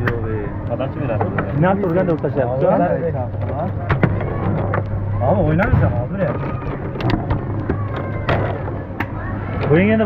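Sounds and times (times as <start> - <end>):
foosball figures clacking: 3.4 - 9.2.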